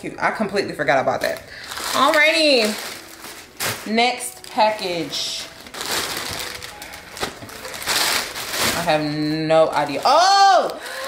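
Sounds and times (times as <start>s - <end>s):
plastic bags rustling and crinkling: 0.5s - 11.0s.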